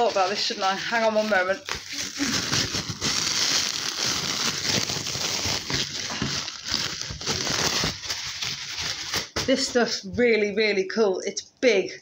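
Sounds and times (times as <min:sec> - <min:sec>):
plastic wrapping crinkling: 0:00.0 - 0:10.0.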